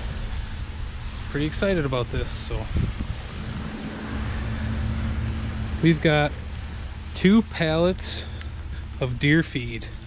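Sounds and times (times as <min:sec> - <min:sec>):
low steady rumble: 0:00.0 - 0:10.0
man speaking: 0:01.3 - 0:02.8, 0:05.8 - 0:06.4, 0:07.1 - 0:10.0.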